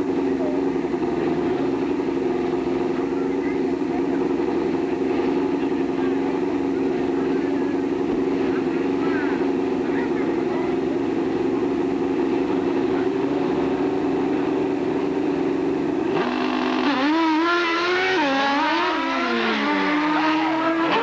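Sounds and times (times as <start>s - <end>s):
motorcycle engines droning: 0.0s - 21.0s.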